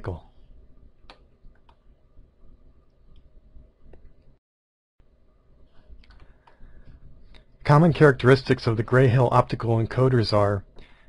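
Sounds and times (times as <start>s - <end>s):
faint low hum: 0.0s - 4.4s, 5.0s - 11.0s
soft clicks: 1.0s - 1.9s, 2.9s - 3.3s.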